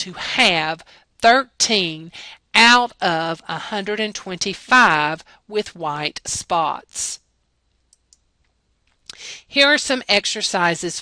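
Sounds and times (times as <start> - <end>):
computer mouse clicks: 7.7 - 9.0.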